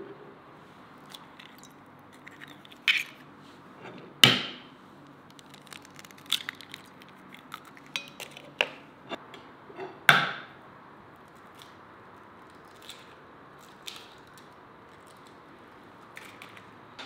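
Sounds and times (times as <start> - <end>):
eggshell cracking: 5.1 - 8.8.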